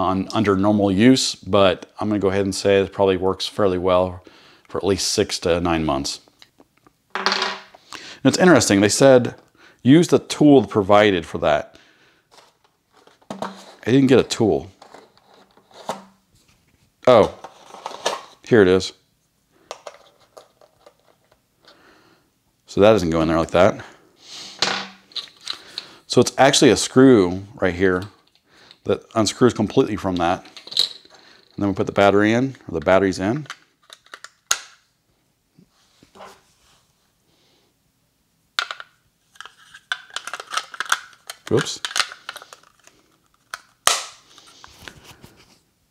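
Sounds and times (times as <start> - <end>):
plastic parts clicking: 33.4 - 34.8, 38.6 - 44.1.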